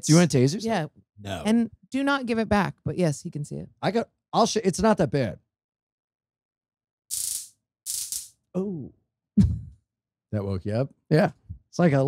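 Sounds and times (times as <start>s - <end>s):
stun gun electric crackling: 7.1s - 8.3s.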